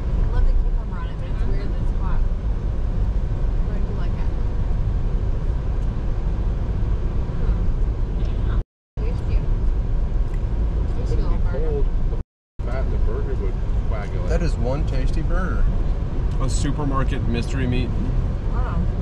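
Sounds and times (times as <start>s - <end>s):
car cabin road rumble: 0.0s - 19.0s.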